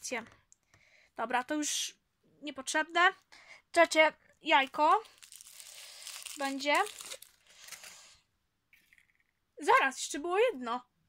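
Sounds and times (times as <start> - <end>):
packaging rustling: 5.0 - 8.2.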